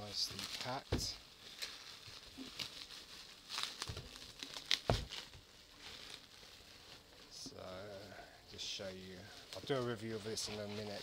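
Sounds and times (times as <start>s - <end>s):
bubble wrap crinkling: 0.0s - 11.0s.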